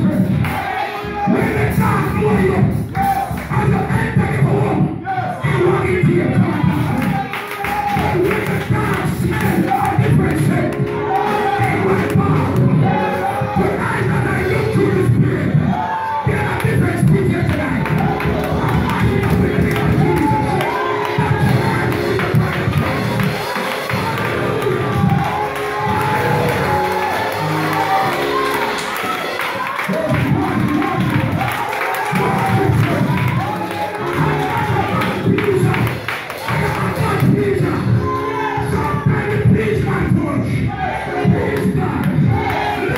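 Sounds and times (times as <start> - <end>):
congregation clapping and singing: 0.0 - 42.9
worship music: 0.0 - 42.9
man singing into a microphone: 8.0 - 22.8, 34.1 - 42.4.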